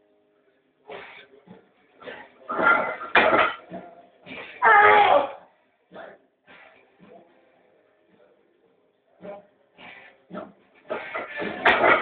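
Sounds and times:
barbell plates clanking: 2.5 - 3.8, 10.9 - 12.0.

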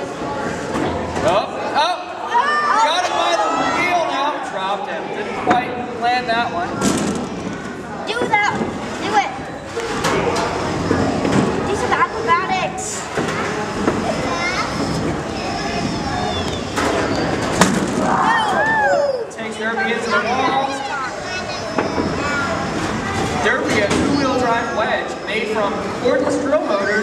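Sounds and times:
spectators chattering: 0.0 - 27.0
children's voices: 6.7 - 16.8, 18.0 - 24.9.

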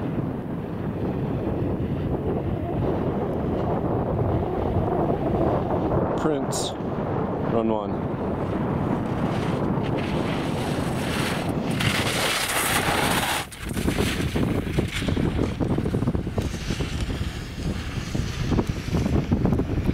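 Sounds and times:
wind buffeting microphone: 0.0 - 19.9.

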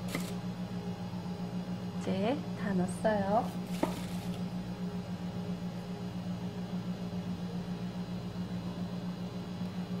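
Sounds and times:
low fluttering hum: 0.0 - 10.0.

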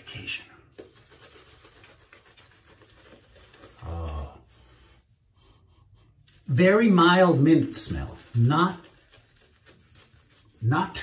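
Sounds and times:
shaving brush swishing on stubble: 0.0 - 3.9, 6.3 - 11.0.

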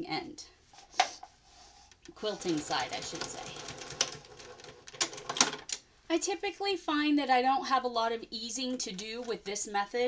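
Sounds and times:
sewing machine clicks: 2.0 - 5.8
sewing machine running: 2.2 - 5.7.

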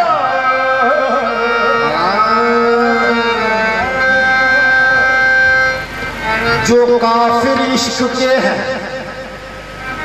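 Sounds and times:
harmonium chord: 0.0 - 10.0.

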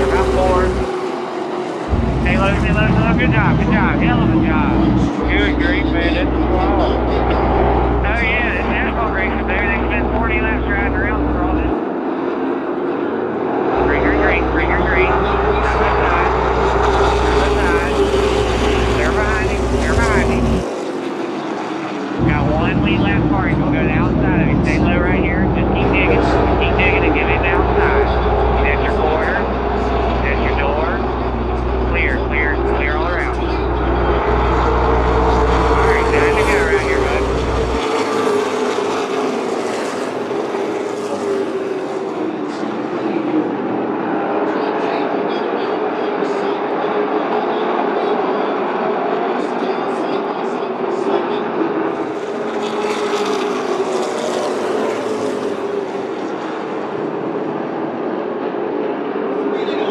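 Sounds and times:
race car engines droning: 0.0 - 59.9.

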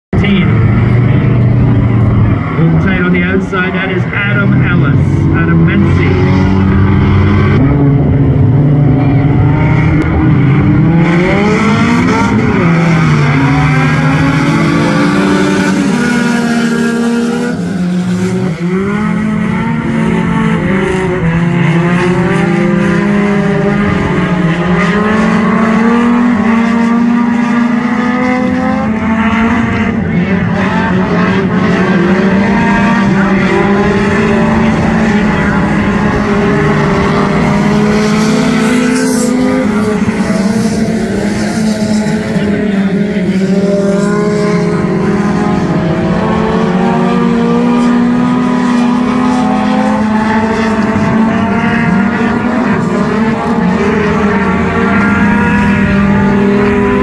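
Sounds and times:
race car engines revving: 0.1 - 57.0.

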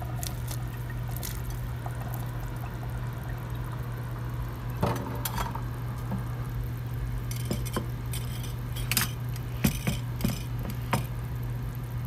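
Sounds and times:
soup bubbling at a boil: 0.0 - 12.0
steady low hum: 0.0 - 12.0.

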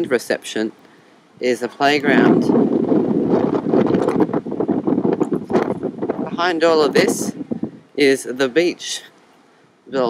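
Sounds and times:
wind on microphone: 1.4 - 8.1.

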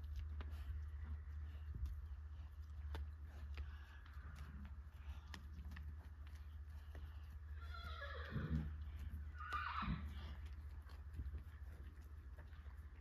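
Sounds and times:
steady low rumble: 0.0 - 7.6, 10.0 - 13.0
hoof clops: 0.0 - 13.0
horse whinnying: 7.6 - 10.2.

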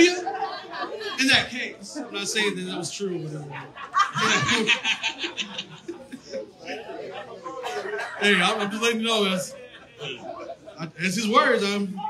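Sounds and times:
people laughing: 0.0 - 12.0.

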